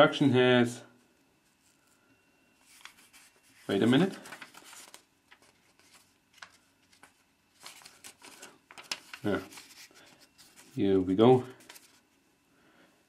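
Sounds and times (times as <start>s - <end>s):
paper pages rustling: 2.6s - 12.0s.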